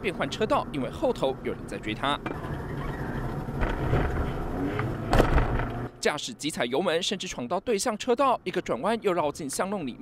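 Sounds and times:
car engine and road noise: 0:00.0 - 0:10.0.

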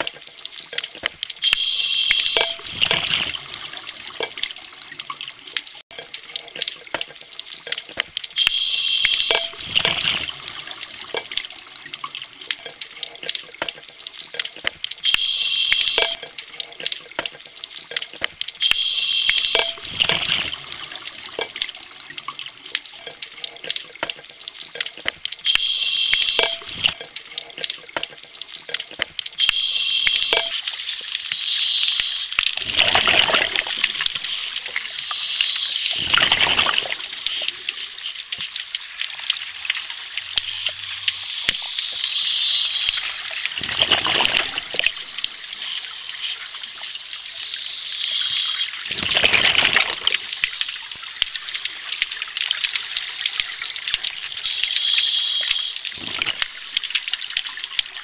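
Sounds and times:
crackle of clicks: 0:00.0 - 0:20.5, 0:21.2 - 0:46.9, 0:47.6 - 0:58.0.

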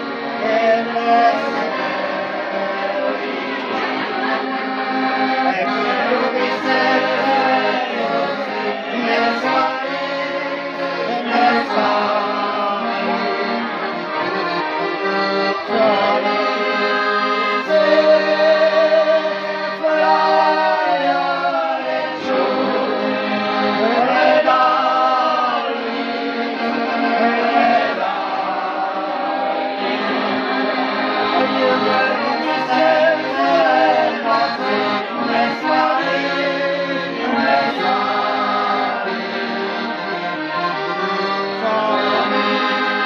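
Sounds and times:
man singing: 0:00.0 - 0:03.9, 0:05.3 - 0:13.4, 0:15.6 - 0:26.1, 0:31.3 - 0:39.3, 0:41.5 - 0:42.9
button accordion playing folk tune: 0:00.0 - 0:43.0.

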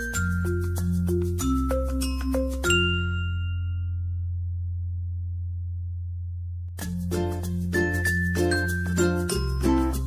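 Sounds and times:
chime-like music notes: 0:00.0 - 0:04.2, 0:06.8 - 0:10.0.

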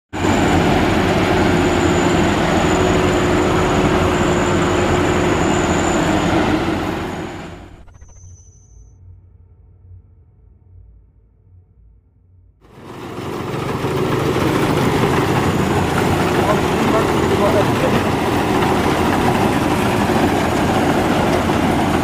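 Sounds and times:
combine harvester running: 0:00.2 - 0:08.3, 0:12.6 - 0:22.0
thin high machine whine: 0:01.2 - 0:09.4.

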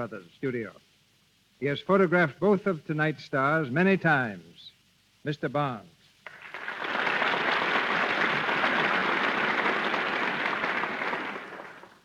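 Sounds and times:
audience applauding: 0:06.2 - 0:12.0.

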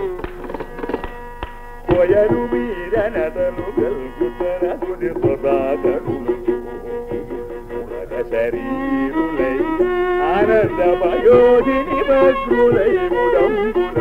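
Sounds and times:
hand drum strokes: 0:00.0 - 0:08.5.

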